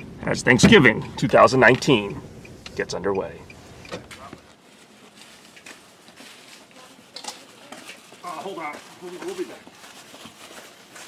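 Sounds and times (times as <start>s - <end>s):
car engine rumble: 0.0s - 4.6s.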